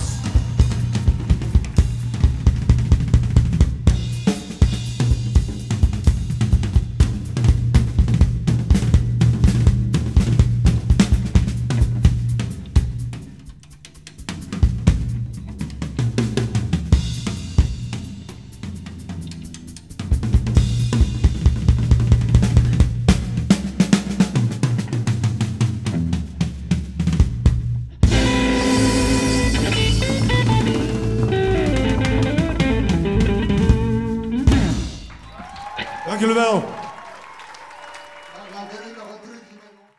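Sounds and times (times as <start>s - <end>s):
upright double bass: 0.0s - 35.1s
drum kit solo: 0.0s - 36.9s
electric guitar: 28.0s - 36.0s.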